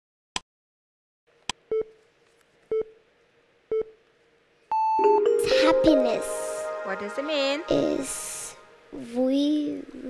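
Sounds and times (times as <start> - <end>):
long high beep: 4.7 - 5.8.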